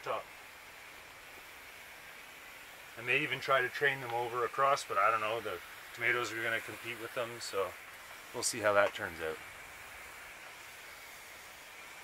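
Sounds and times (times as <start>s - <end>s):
sprayer nozzle hissing: 0.0s - 12.0s.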